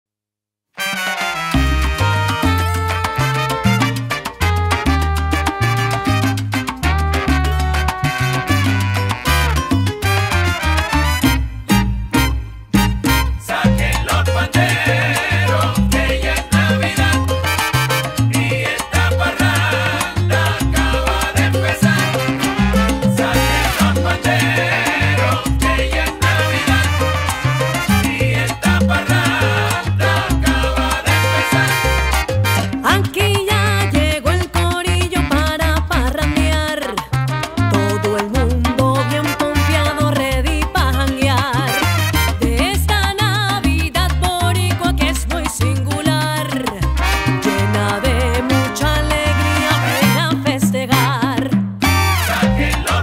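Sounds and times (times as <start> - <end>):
salsa band playing: 0.8 - 53.0.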